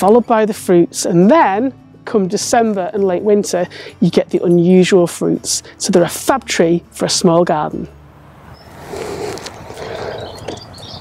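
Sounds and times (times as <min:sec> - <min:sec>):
faint high bird chirps: 0:09.5 - 0:11.0.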